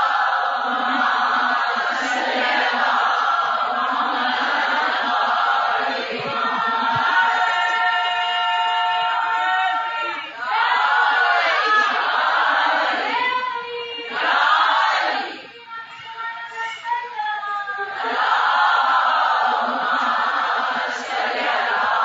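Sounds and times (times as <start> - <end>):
voices chanting in unison: 0.0 - 15.5, 17.8 - 22.0.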